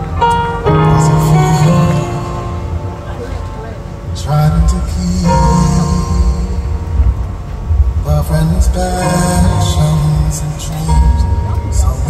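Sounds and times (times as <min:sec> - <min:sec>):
backing track with heavy bass: 0:00.0 - 0:12.0
man singing slow ballad: 0:00.6 - 0:02.8, 0:04.0 - 0:12.0.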